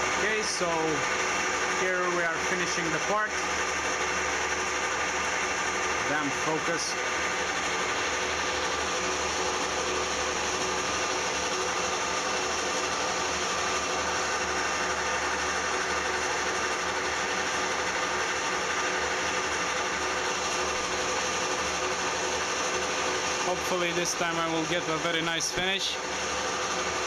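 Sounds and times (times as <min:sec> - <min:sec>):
metal lathe whining: 0:00.0 - 0:27.0.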